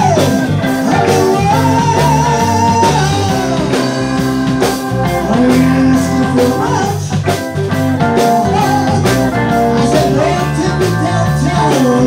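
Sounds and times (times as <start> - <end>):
drum kit beat: 0.0 - 12.0
electric bass: 0.0 - 12.0
electric guitar: 0.0 - 12.0
keyboard: 0.0 - 12.0.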